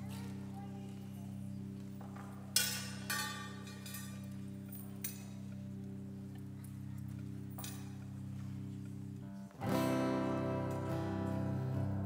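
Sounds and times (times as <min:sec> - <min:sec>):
acoustic guitar chords ringing: 0:09.6 - 0:12.0.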